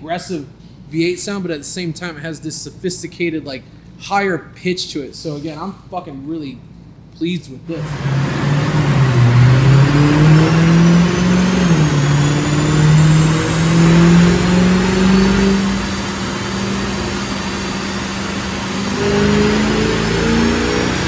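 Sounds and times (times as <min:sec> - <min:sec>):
car engine accelerating: 0:07.7 - 0:21.0.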